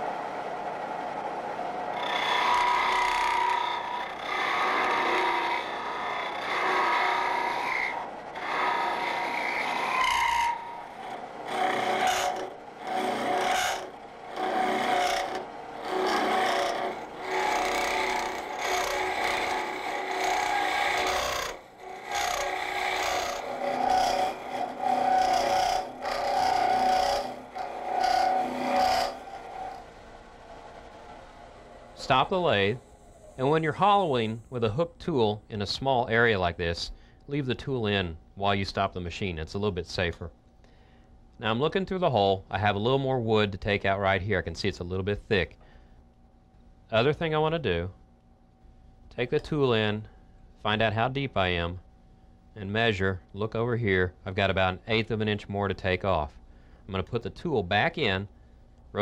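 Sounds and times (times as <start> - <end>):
hook tool scraping wood on lathe: 2.0 - 29.9.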